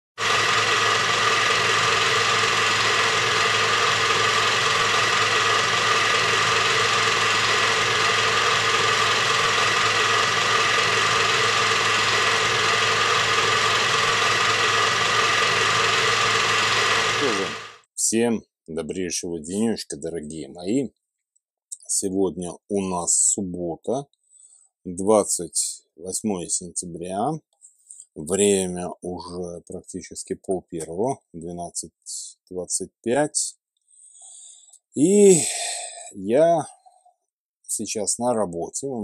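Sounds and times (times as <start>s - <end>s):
film projector whirring clatter: 0.2s - 17.9s.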